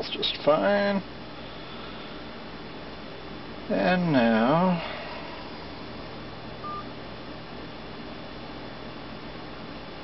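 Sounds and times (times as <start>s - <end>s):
low background hum: 0.0s - 10.0s
touchtone keypad beep: 6.6s - 6.9s.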